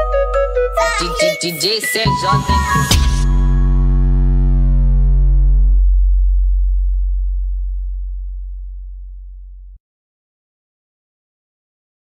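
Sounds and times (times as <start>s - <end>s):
deep synth bass note: 2.7s - 9.8s.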